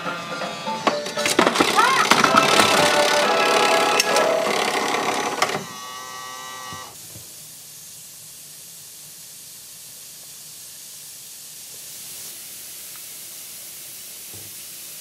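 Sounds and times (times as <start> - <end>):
music ending on held chord: 2.0 - 5.3.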